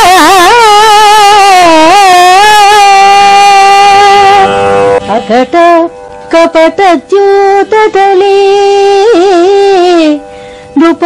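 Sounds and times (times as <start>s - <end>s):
woman singing ornamented notes: 0.0s - 11.0s.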